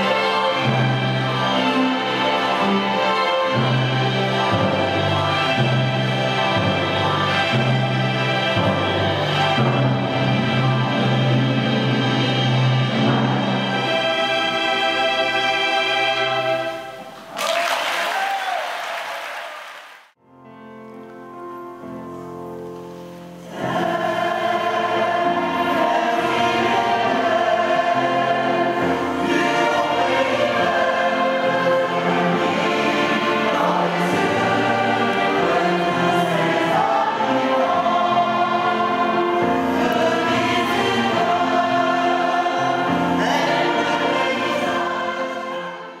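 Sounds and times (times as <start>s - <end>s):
choir singing sustained notes: 0.0s - 17.2s, 23.4s - 46.0s.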